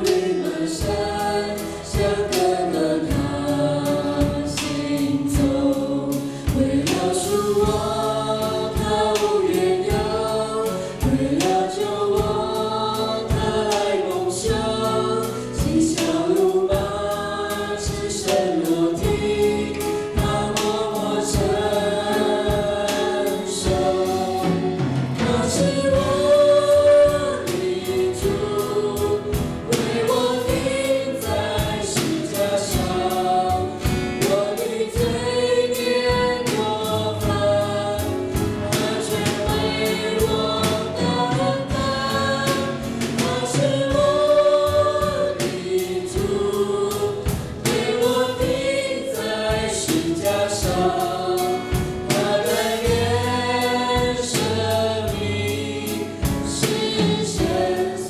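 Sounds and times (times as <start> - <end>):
acoustic guitar: 0.0 - 58.0
drum kit steady beat: 0.0 - 58.0
piano: 0.0 - 58.0
several voices singing together: 0.0 - 58.0.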